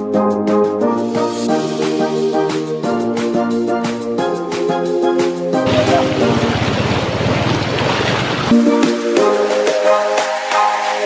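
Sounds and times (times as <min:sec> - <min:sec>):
motorcycle splashing through water: 0:05.6 - 0:08.6
floodwater rushing: 0:05.6 - 0:09.2
wind buffeting microphone: 0:05.7 - 0:08.5.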